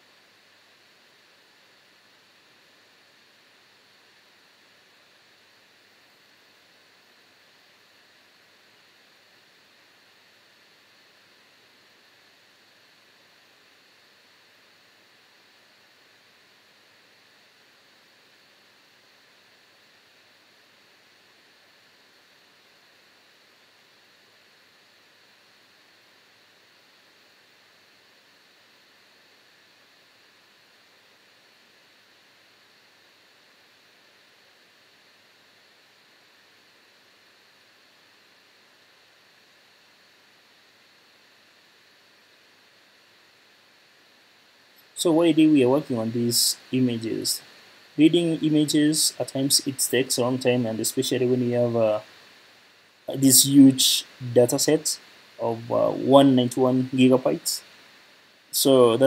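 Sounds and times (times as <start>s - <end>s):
faint microphone hiss: 0.0s - 59.0s.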